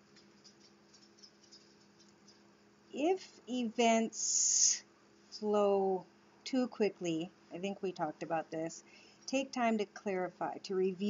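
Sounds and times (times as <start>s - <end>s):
cards being shuffled: 0.0s - 2.4s
low steady hum: 0.0s - 11.0s.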